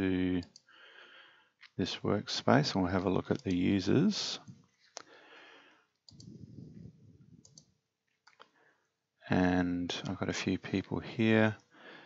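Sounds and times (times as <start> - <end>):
faint mouse clicks: 0.4 - 0.7, 3.3 - 3.7, 5.9 - 6.4, 7.4 - 8.6
low rustling noise: 6.1 - 7.4.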